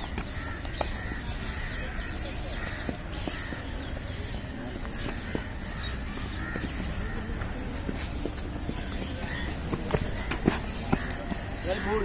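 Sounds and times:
crows cawing: 0:00.0 - 0:04.2, 0:04.8 - 0:07.6, 0:09.1 - 0:12.0.

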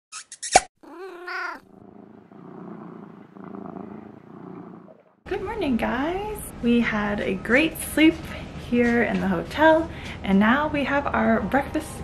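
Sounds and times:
cat meowing: 0:00.8 - 0:01.8
cat purring: 0:00.8 - 0:05.2.

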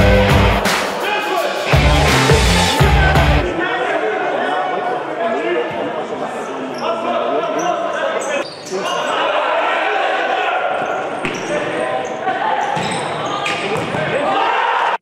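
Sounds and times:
players shouting: 0:00.0 - 0:04.8.

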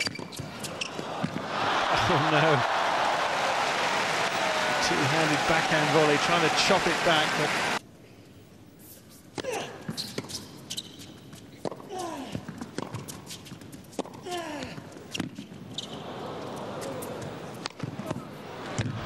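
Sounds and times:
shoes squeaking on court: 0:00.0 - 0:01.4, 0:09.8 - 0:14.2, 0:14.9 - 0:18.2
applause: 0:01.4 - 0:07.8.

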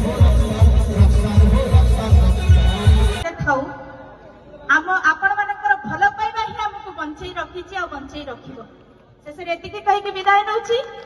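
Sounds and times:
live concert music with bass beat: 0:00.0 - 0:03.2.

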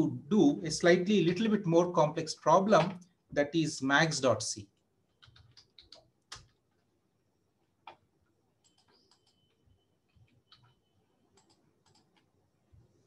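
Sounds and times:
computer keyboard keystrokes: 0:05.2 - 0:06.6, 0:08.6 - 0:09.5, 0:10.2 - 0:10.8, 0:11.4 - 0:12.3.

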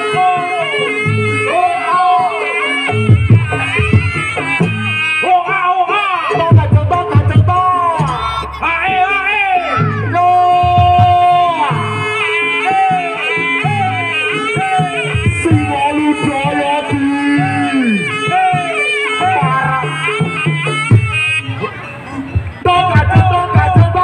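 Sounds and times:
sliding melody: 0:00.0 - 0:24.0
drum strokes: 0:02.9 - 0:12.2
steady held tone: 0:07.6 - 0:11.4.

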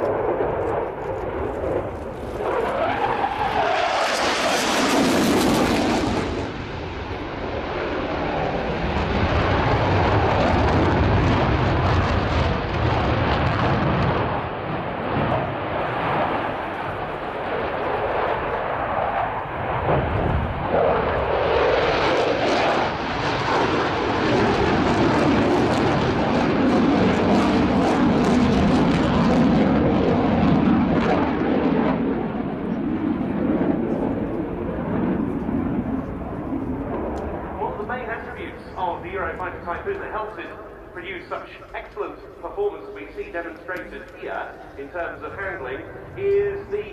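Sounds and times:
fighter jet roaring overhead: 0:00.0 - 0:46.9.

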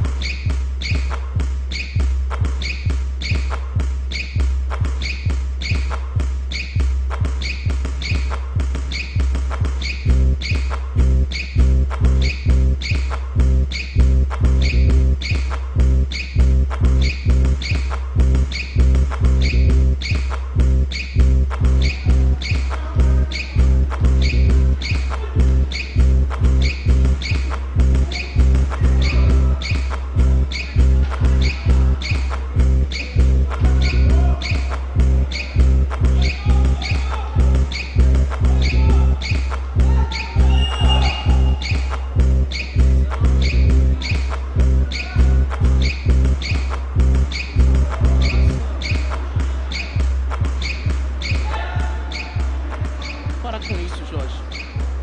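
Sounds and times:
instrumental music with heavy bass: 0:00.0 - 0:55.0.

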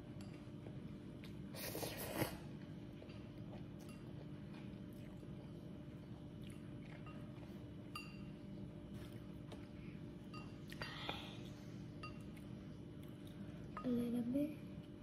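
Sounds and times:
quiet chewing: 0:00.0 - 0:13.8.

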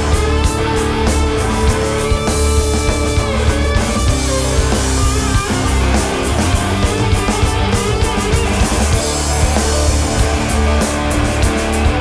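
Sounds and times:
bass guitar: 0:00.0 - 0:12.0
distorted electric guitar: 0:00.0 - 0:12.0
drum kit: 0:00.0 - 0:12.0.

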